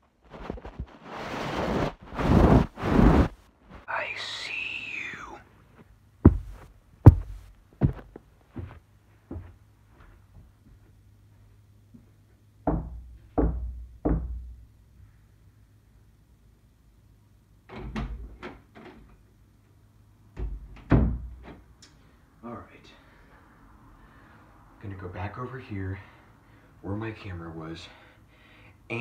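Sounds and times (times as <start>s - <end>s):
steady low hum: 2.0s - 17.7s
dull knocks and thuds: 6.3s - 9.5s, 12.6s - 14.5s.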